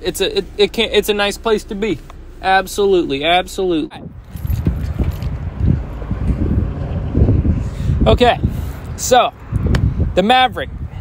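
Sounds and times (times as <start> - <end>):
wind buffeting microphone: 3.9 - 11.0.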